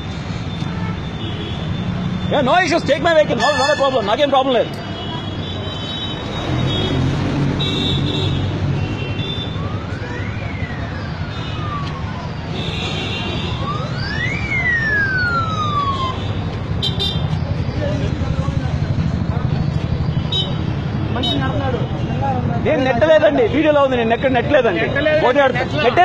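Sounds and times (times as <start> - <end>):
street traffic rumble: 0.0 - 26.0
siren wailing: 9.2 - 12.6, 13.3 - 16.4.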